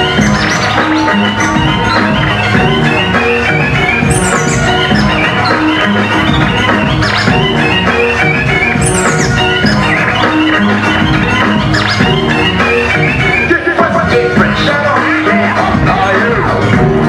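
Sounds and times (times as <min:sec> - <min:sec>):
hip-hop turntable scratching: 0:00.0 - 0:17.0
steady beat: 0:00.0 - 0:17.0.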